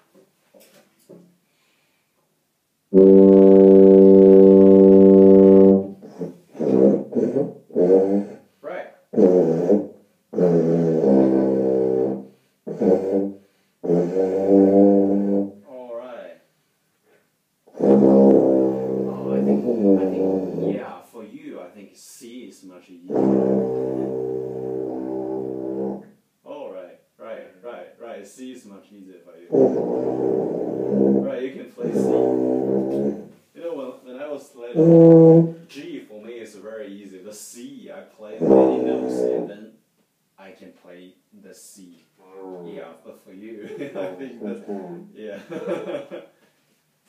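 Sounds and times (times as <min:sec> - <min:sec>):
tuba playing low notes: 0:02.9 - 0:08.4, 0:09.1 - 0:15.6, 0:17.7 - 0:21.0, 0:23.0 - 0:26.2, 0:29.5 - 0:33.3, 0:34.7 - 0:35.8, 0:38.3 - 0:39.8, 0:44.0 - 0:45.2.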